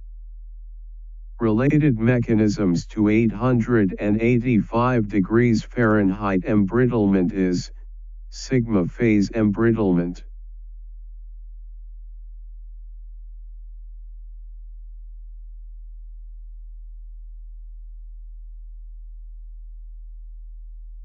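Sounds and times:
steady low-pitched hum: 0.0s - 21.0s.

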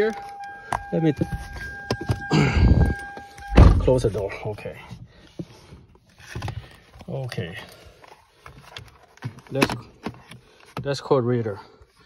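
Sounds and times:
phone handling rubbing: 0.0s - 3.6s
short low thump: 2.6s - 4.1s.

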